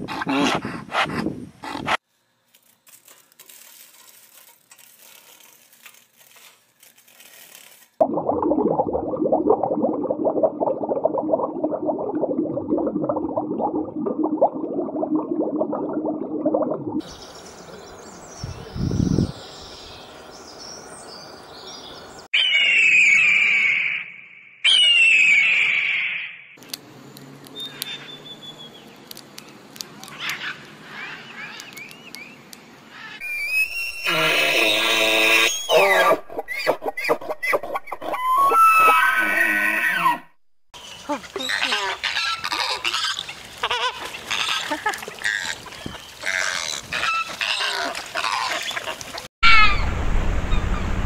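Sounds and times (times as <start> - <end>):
bird of prey screaming: 22.4 - 26.5, 33.0 - 36.2.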